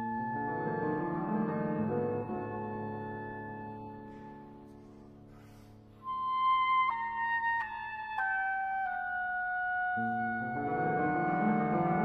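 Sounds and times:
soft piano chords and arpeggios: 0.0s - 12.0s.

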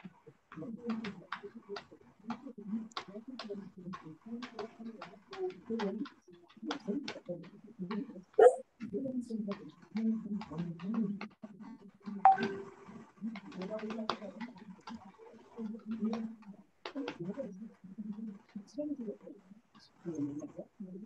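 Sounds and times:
faint voices over video call: 0.0s - 21.0s.

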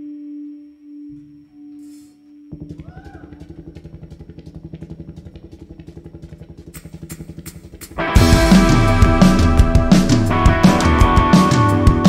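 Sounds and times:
pulsing low instrumental drone: 2.5s - 12.0s.

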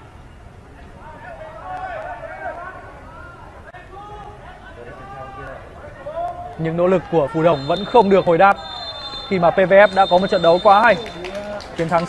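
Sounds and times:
low steady background noise: 0.0s - 12.0s
distant players shouting: 0.8s - 12.0s.

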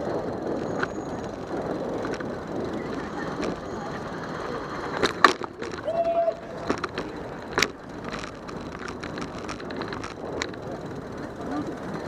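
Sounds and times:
steady street noise: 0.0s - 12.0s
crowd chatter: 2.4s - 12.0s.

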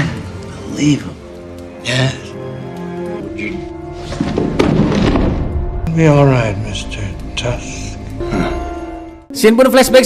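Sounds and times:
film score music: 0.0s - 10.0s
chair falling over with thuds: 4.0s - 5.5s.

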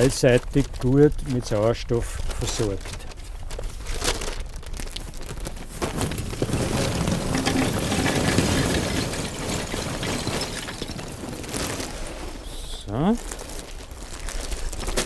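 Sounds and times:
charcoal clattering into metal pan: 5.8s - 11.9s.

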